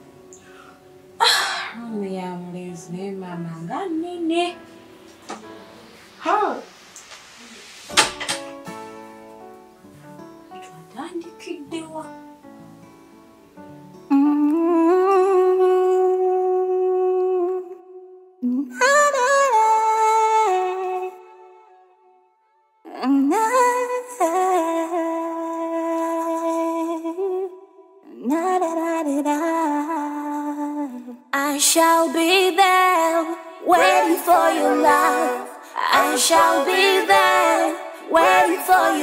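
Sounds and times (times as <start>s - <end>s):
loud breathy outburst: 0.4s - 1.8s
woman humming a slow tune: 14.1s - 19.0s.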